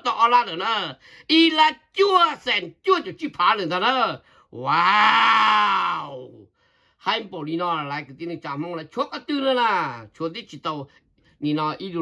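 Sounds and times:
person exclaiming drawn-out waaa: 0:04.6 - 0:06.4.

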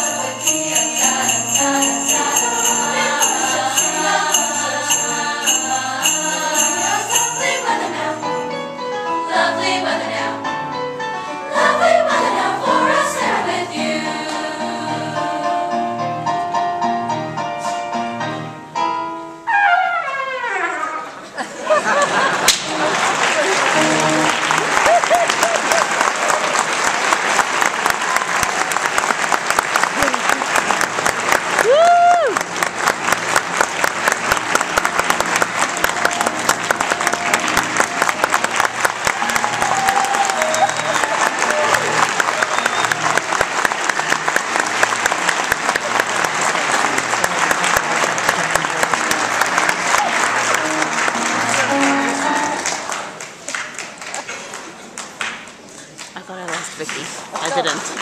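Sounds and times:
audience applauding: 0:21.6 - 0:58.0
person cheering: 0:31.6 - 0:32.4, 0:39.1 - 0:42.6.

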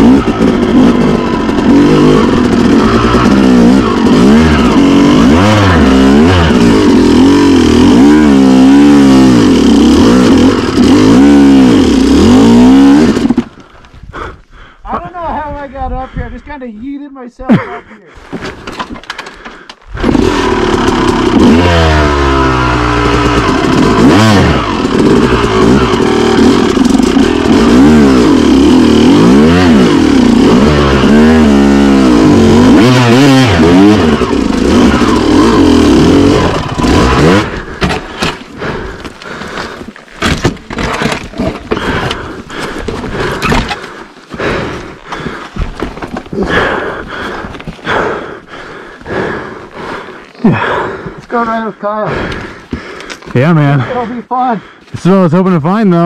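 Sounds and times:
dirt bike engine revving: 0:00.0 - 0:13.6, 0:19.9 - 0:56.0
knocks and clatters: 0:18.3 - 0:19.8.

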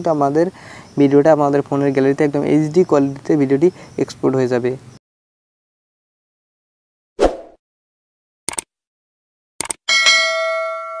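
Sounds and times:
short swish: 0:07.2 - 0:07.6
quick double clicks: 0:08.5 - 0:08.7, 0:09.6 - 0:09.8
notification bell ding: 0:09.9 - 0:11.0.

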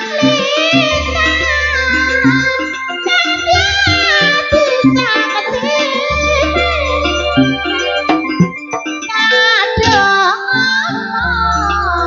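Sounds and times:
woman singing into a microphone: 0:00.0 - 0:08.2, 0:09.1 - 0:12.0.

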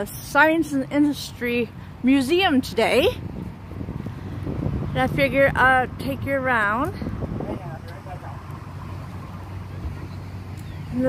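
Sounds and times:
distant city traffic rumble: 0:00.0 - 0:11.0.

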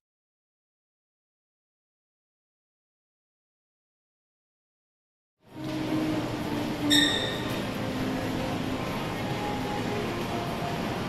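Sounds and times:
shopping mall background hum: 0:05.4 - 0:11.0.

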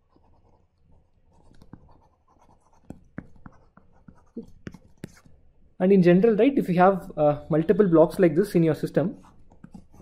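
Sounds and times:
stylus scratching on tablet: 0:00.0 - 0:05.4, 0:08.9 - 0:10.0
stylus tapping on tablet: 0:02.6 - 0:05.3.

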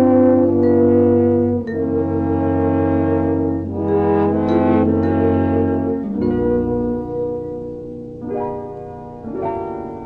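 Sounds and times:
orchestral brass chords: 0:00.0 - 0:07.7.

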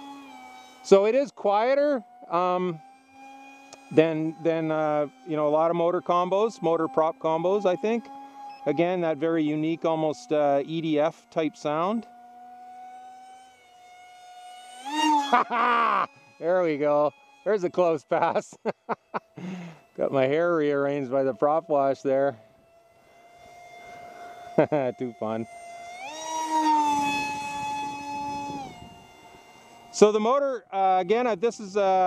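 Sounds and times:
electric model jet motor whine: 0:00.0 - 0:32.0.

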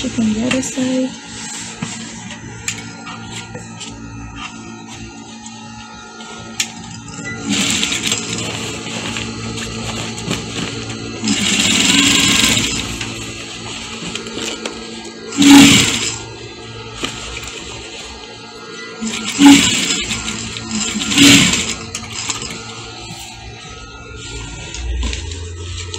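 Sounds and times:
sewing machine stitching: 0:07.4 - 0:13.2, 0:15.3 - 0:16.2, 0:19.0 - 0:22.6.

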